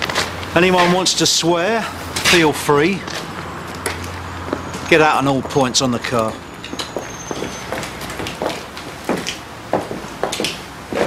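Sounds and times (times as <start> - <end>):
footsteps on hard ground: 0.0 - 1.1, 2.1 - 11.0.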